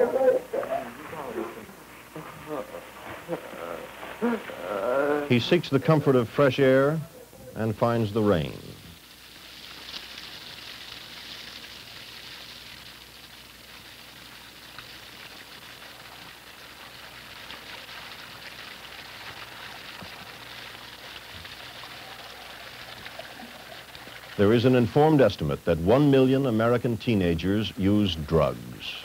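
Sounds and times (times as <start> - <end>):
steady rain falling: 8.3 - 29.0.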